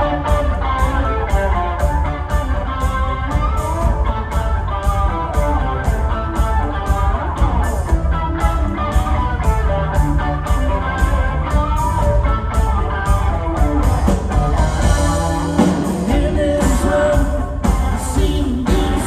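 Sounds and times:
electric guitar melodic lead: 0.0s - 19.0s
heavy bass: 0.0s - 19.0s
steady drumbeat: 0.0s - 19.0s.

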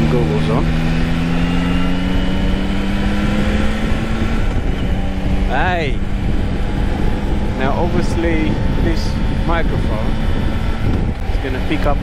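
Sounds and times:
motorcycle engine humming: 0.0s - 12.0s
wind rumble on microphone: 0.0s - 12.0s.

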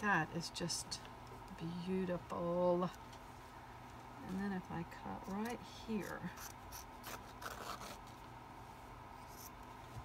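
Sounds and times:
scissors snipping fabric: 5.2s - 8.0s.

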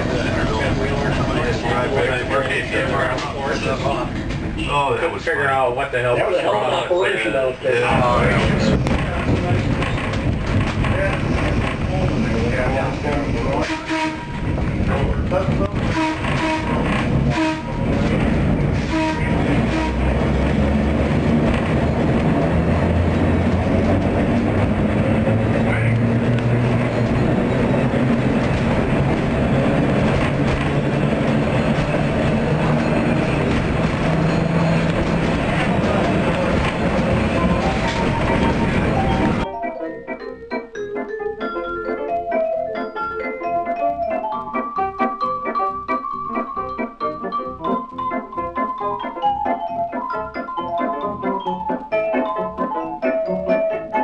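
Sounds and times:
wheels rumbling on track: 0.0s - 39.5s.

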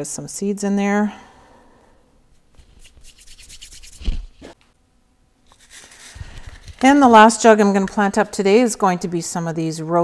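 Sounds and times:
hands rubbing together: 2.4s - 4.6s, 5.5s - 6.8s.

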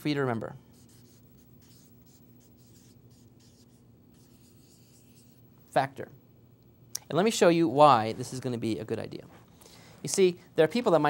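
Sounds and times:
faint steady hum: 0.0s - 11.0s
felt-tip marker on paper: 0.7s - 5.4s.

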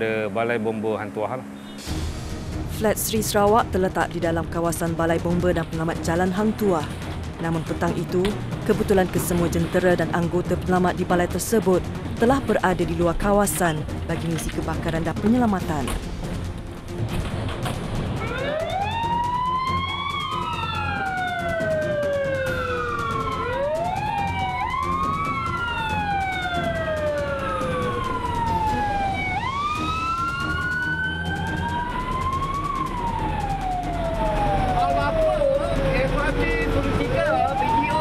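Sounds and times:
fire engine siren wailing: 18.1s - 38.0s.

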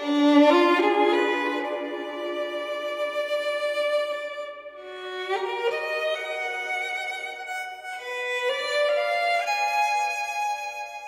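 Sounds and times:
solo violin sustained note: 0.0s - 11.0s.

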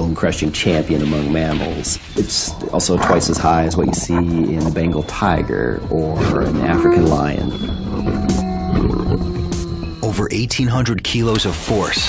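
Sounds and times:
big cat growling and roaring: 1.2s - 10.3s
background music sustained notes: 1.2s - 11.2s.

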